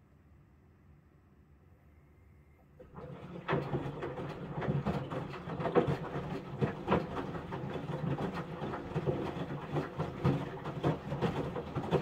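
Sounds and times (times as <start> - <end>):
washing machine motor hum: 2.8 - 12.0
wet laundry tumbling and thudding: 2.8 - 12.0.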